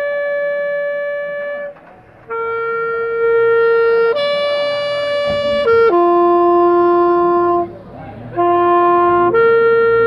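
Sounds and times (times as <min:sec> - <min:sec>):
alto saxophone long notes: 0:00.0 - 0:10.0.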